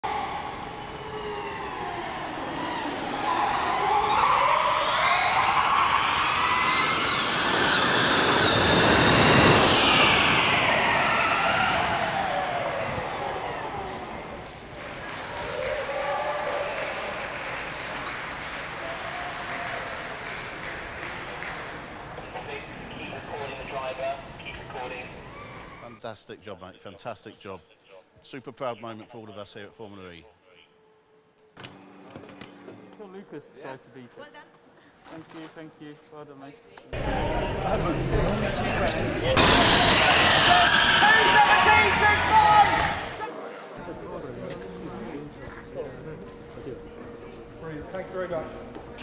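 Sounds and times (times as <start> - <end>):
electric racecar high whine: 0.1 - 14.7, 37.0 - 48.9.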